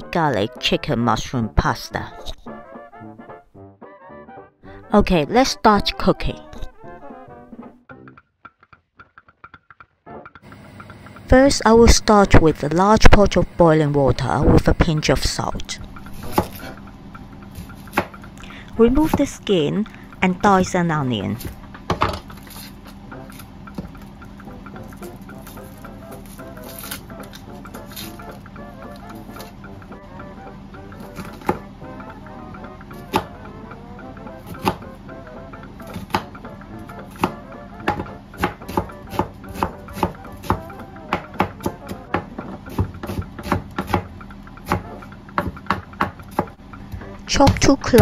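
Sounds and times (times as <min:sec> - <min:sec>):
background music: 0:00.0 - 0:08.6, 0:10.0 - 0:48.0
knife chopping onion on board: 0:16.0 - 0:16.8, 0:17.4 - 0:19.4, 0:24.7 - 0:29.6, 0:31.0 - 0:31.7, 0:32.6 - 0:35.0, 0:35.8 - 0:48.0.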